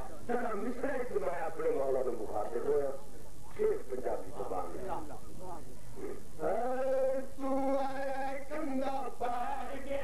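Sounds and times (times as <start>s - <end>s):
man speaking: 0.1s - 5.3s
man chanting and singing: 6.4s - 10.0s.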